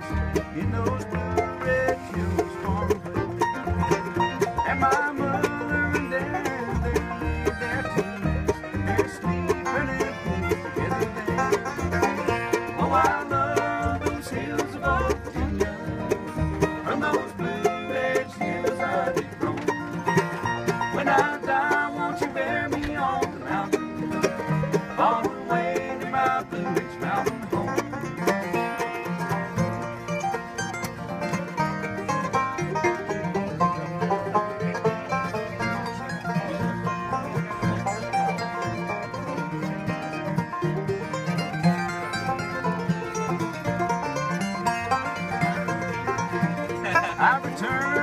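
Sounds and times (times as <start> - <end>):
acoustic bluegrass band playing: 0.0 - 48.0.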